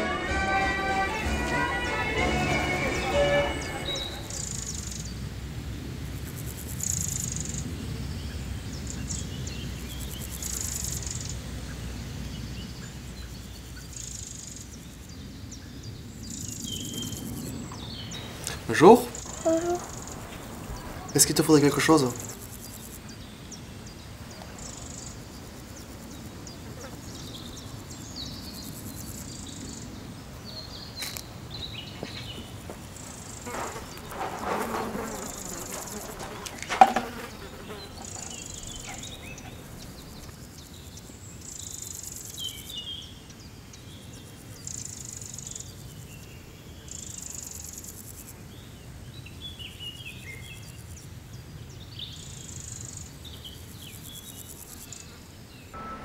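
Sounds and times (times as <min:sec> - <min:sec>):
insects buzzing: 0:00.0 - 0:56.0
rustling: 0:16.9 - 0:23.0, 0:32.1 - 0:40.6.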